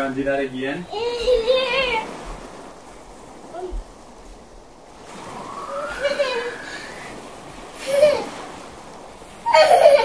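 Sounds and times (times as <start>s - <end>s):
child calling: 0.9s - 2.1s
child squealing: 9.5s - 10.0s.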